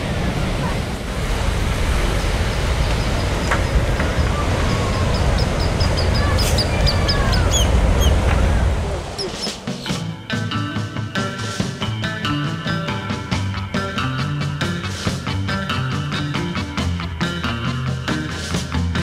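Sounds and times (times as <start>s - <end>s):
surf: 0.0s - 19.0s
wind: 0.0s - 19.0s
short high bird calls: 4.1s - 8.2s.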